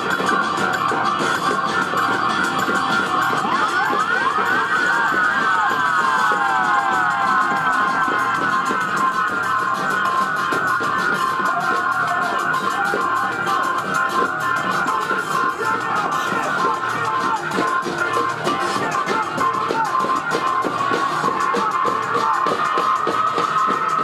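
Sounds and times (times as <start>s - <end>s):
live band playing: 0.0s - 24.0s
siren-like sweeping tone: 0.0s - 24.0s.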